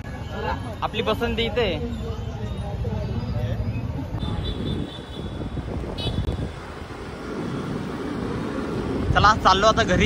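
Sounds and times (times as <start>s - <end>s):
wind rumble on microphone: 4.2s - 10.0s.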